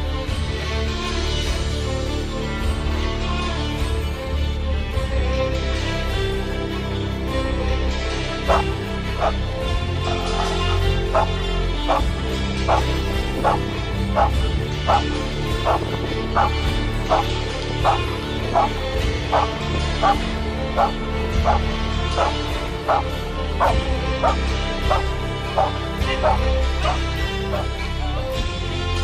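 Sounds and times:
background music: 0:00.0 - 0:29.0
dog barking: 0:08.5 - 0:09.4, 0:11.1 - 0:11.3, 0:12.7 - 0:15.8, 0:17.1 - 0:20.2, 0:20.8 - 0:27.7.

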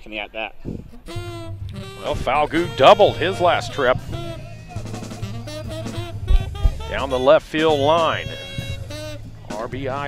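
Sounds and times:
low thumps: 0:00.7 - 0:10.0
plucked guitar music with bass: 0:01.0 - 0:10.0
man talking: 0:02.0 - 0:05.5, 0:06.8 - 0:08.6, 0:09.5 - 0:10.0.

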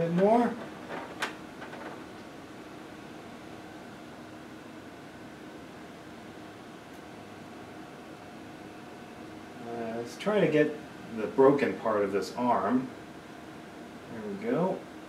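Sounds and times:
fan-like machine hum: 0:00.0 - 0:15.0.

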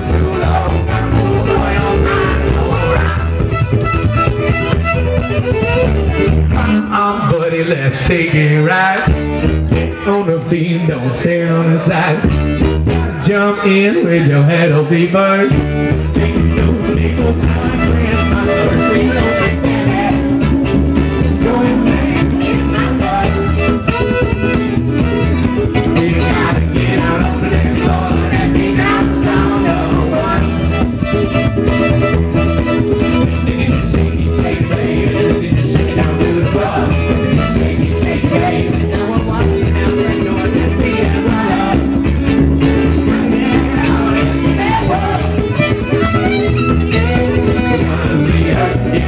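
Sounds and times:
strummed acoustic instrument: 0:00.0 - 0:14.5, 0:15.4 - 0:49.0
fiddle: 0:00.0 - 0:49.0
upright bass: 0:00.0 - 0:49.0.

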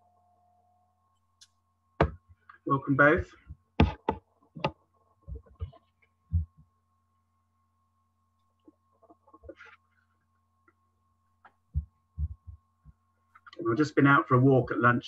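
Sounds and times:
low electrical hum: 0:00.0 - 0:15.0
soft thumps: 0:11.7 - 0:12.6.

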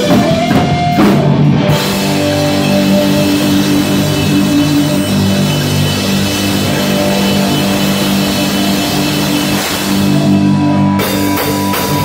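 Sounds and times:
drum kit and cymbals: 0:00.0 - 0:12.0
electric guitars: 0:00.0 - 0:12.0.

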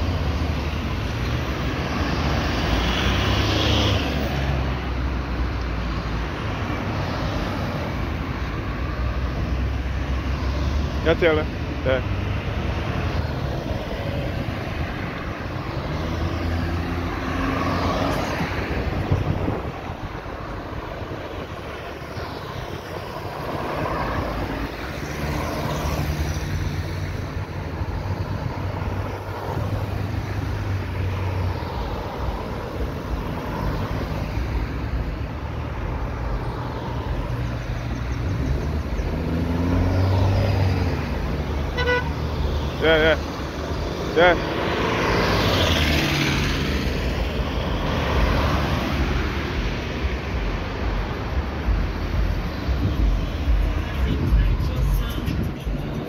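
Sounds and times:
cars passing: 0:00.0 - 0:56.0
tyres on road: 0:00.0 - 0:56.0.

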